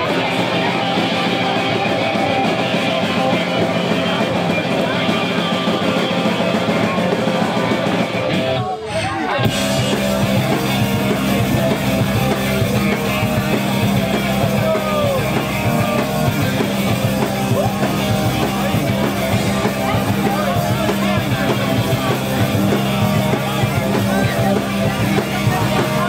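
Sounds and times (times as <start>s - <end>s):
punk band playing live: 0.0s - 26.0s.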